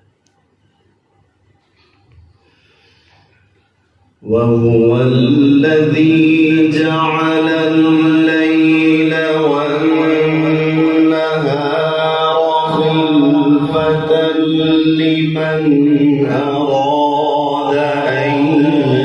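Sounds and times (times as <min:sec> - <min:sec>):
man reciting melodically: 0:04.2 - 0:19.0.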